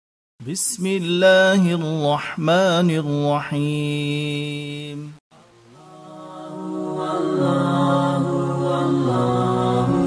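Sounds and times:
wordless vocal music: 0.4 - 10.0.

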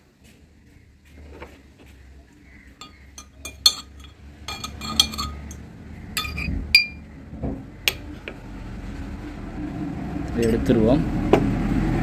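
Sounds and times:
hard object tapping glass: 2.8 - 5.6, 6.2 - 7.0.

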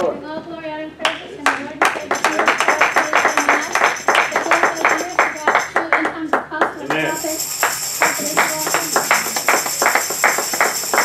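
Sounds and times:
congregation clapping in rhythm: 1.1 - 11.0
held wavering note: 7.0 - 11.0
music: 7.1 - 11.0.

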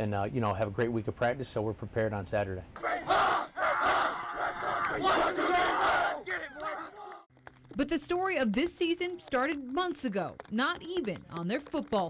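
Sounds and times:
football players shouting together: 2.8 - 7.3.

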